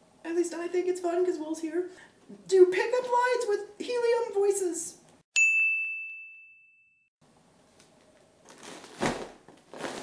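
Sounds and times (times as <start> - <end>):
bell-like ding: 5.4 - 7.1.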